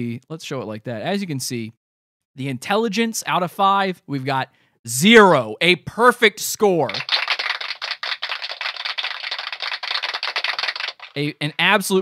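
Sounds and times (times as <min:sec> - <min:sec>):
fast typing on keyboard: 0:06.9 - 0:11.2.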